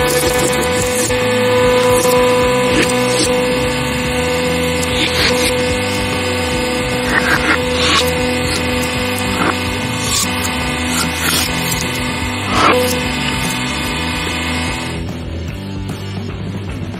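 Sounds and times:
hydraulic pump motor humming: 0.0 - 15.5.

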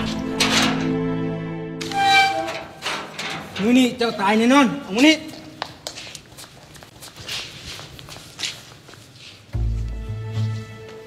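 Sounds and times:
shuffling footsteps: 5.1 - 11.0.

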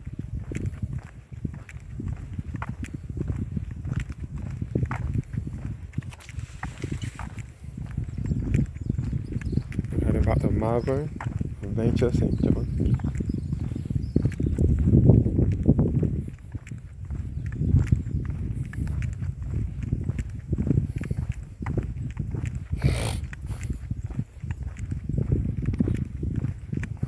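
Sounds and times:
footsteps on asphalt: 0.0 - 27.0
wind buffeting microphone: 0.0 - 27.0.

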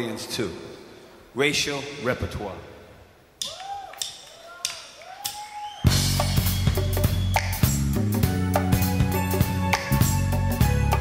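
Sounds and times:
rock band playing: 5.8 - 11.0.

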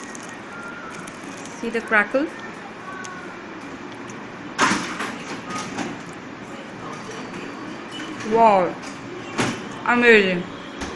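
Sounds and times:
crisp pastry crust crunching: 0.0 - 1.7.

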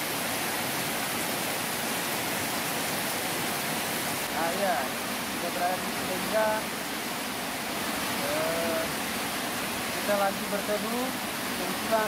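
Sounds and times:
heavy rain: 0.0 - 12.0.

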